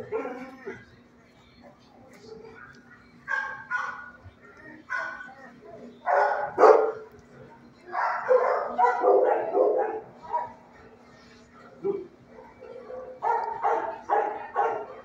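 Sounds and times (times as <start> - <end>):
dogs barking and yipping: 3.3 - 4.2, 4.9 - 5.4, 6.0 - 7.1, 8.0 - 10.7, 12.4 - 15.0.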